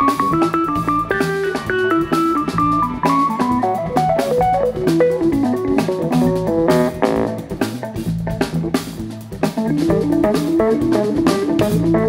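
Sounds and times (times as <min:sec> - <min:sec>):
melodic lead line: 0:00.0 - 0:07.8, 0:09.6 - 0:12.0
drum kit: 0:00.0 - 0:12.0
electric bass: 0:00.0 - 0:12.0.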